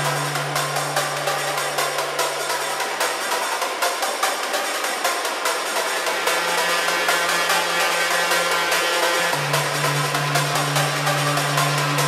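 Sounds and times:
dense synth layer: 0.0s - 12.0s
deep bass tone: 9.4s - 12.0s.

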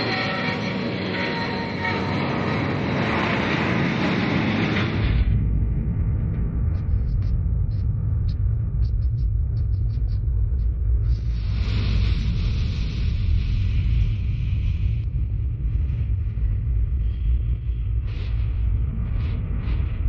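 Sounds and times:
deep rumble: 0.0s - 20.0s
hiss: 11.0s - 15.0s.

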